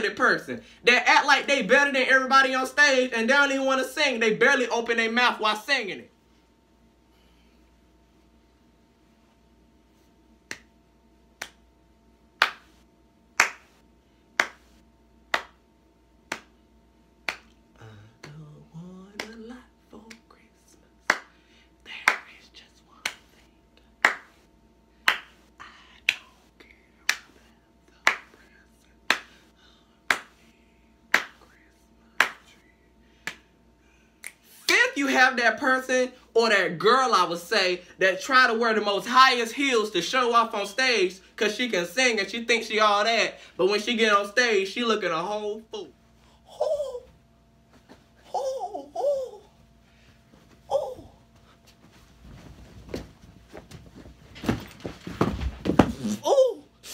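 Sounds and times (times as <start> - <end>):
finger snaps: 10.4 - 10.7, 11.4 - 11.6, 16.3 - 16.6, 23.0 - 23.4, 26.0 - 26.4, 33.2 - 33.5, 34.2 - 34.5
person mumbled singing: 17.8 - 20.2, 46.4 - 47.1, 48.2 - 49.5, 50.7 - 51.2.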